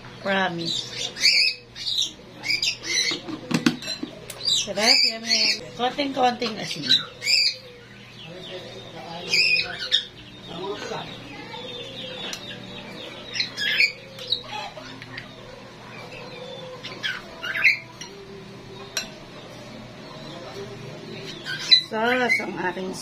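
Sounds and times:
faint voices: 0:00.0 - 0:23.0
bird squawking: 0:00.7 - 0:03.3, 0:04.4 - 0:05.9, 0:06.6 - 0:18.0, 0:21.2 - 0:22.8.

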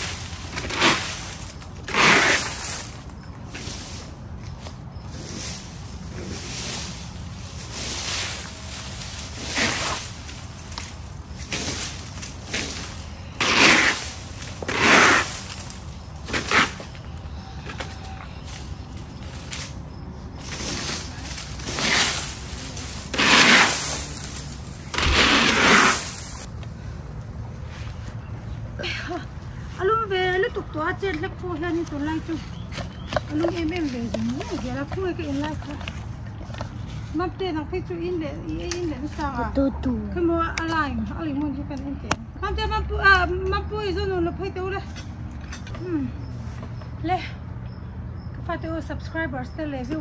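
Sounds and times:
plastic rake scraping: 0:00.0 - 0:04.1, 0:05.1 - 0:16.9, 0:20.4 - 0:26.5.

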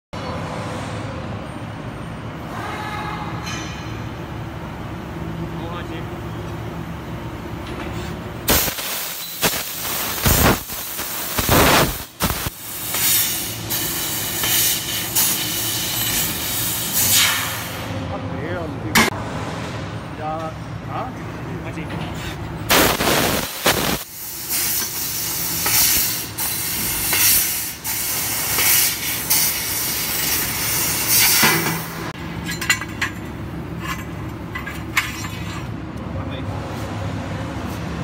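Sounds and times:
gas jet rushing in bursts: 0:08.5 - 0:17.9, 0:22.7 - 0:32.0.

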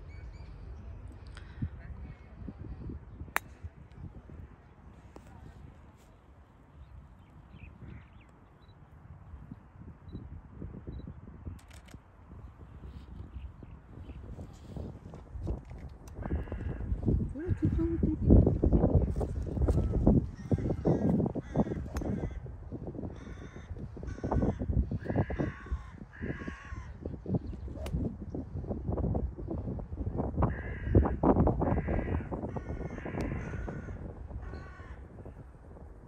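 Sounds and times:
wind rumble on microphone: 0:00.0 - 0:36.0
golf club striking ball: 0:03.4 - 0:03.6, 0:27.8 - 0:28.1
sharp clicks: 0:11.6 - 0:12.0
crows cawing: 0:16.2 - 0:16.9, 0:20.4 - 0:22.5, 0:23.1 - 0:27.0, 0:30.5 - 0:35.0.

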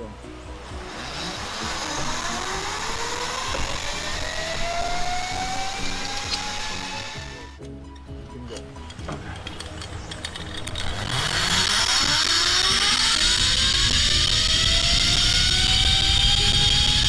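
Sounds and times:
background music: 0:00.0 - 0:17.0
zipline pulley whining on cable: 0:00.5 - 0:07.6, 0:09.2 - 0:17.0.

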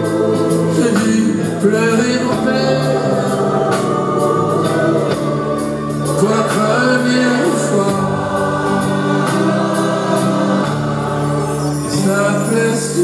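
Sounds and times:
band with electric guitar: 0:00.0 - 0:13.0
choir singing: 0:00.0 - 0:13.0
male lead singer: 0:00.0 - 0:13.0.

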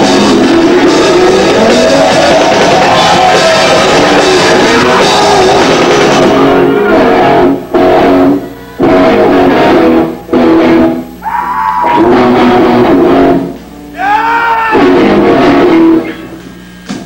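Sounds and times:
rock band with electric guitar riff: 0:00.0 - 0:17.0.

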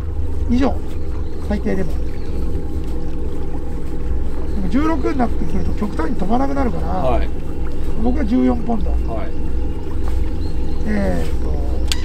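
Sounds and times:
boat motor running: 0:00.0 - 0:12.0.

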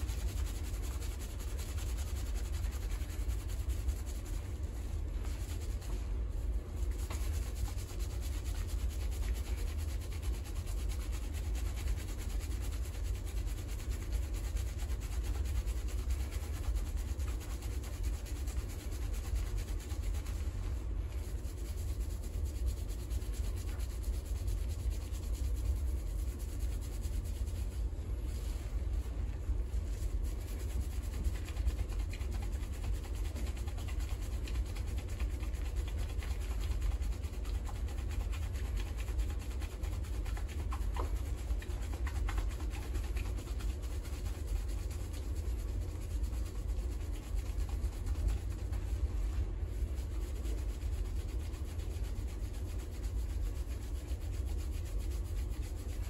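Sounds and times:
fingers scrubbing lathered hair: 0:00.0 - 0:56.0
steady low rumble: 0:00.0 - 0:56.0.

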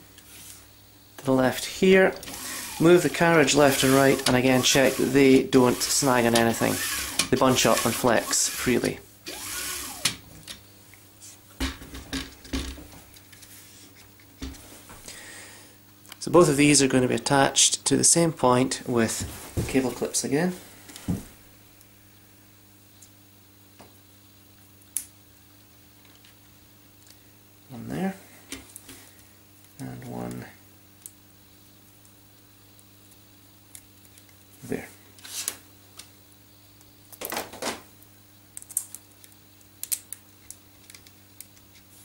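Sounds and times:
steady low hum: 0:00.0 - 0:37.1
wordless voice sounds: 0:01.2 - 0:02.2, 0:02.8 - 0:09.0.

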